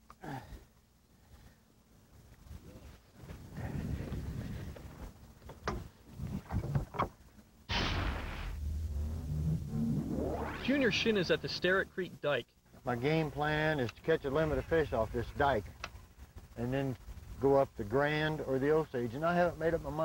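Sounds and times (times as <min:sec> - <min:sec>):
outboard motor droning: 0:08.1 - 0:11.9.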